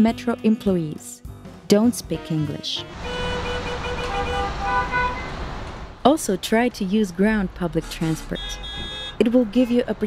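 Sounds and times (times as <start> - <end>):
bus engine rumble: 2.8 - 10.0.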